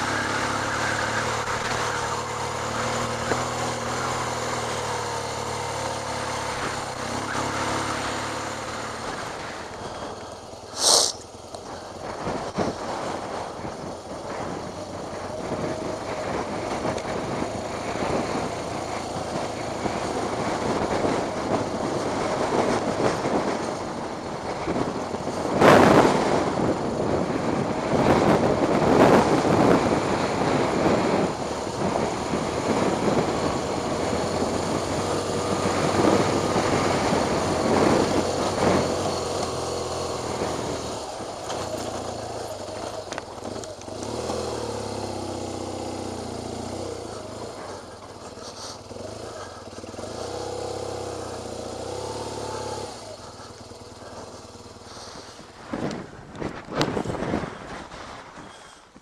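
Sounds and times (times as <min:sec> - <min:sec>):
motorcycle engine: 0:00.0 - 0:59.0
loud rushing noise: 0:10.7 - 0:11.2.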